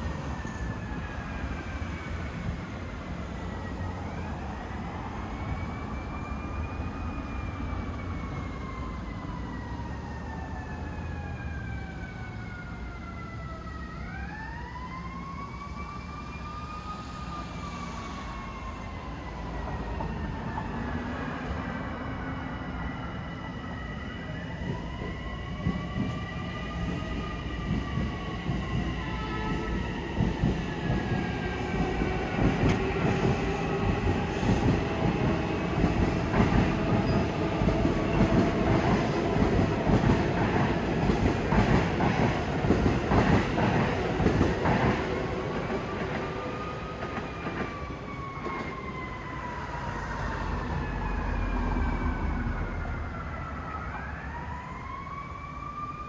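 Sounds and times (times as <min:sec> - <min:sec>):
siren wailing: 0:03.4 - 0:21.4, 0:45.0 - 0:56.0
train wheels clattering on rails: 0:30.2 - 0:46.3.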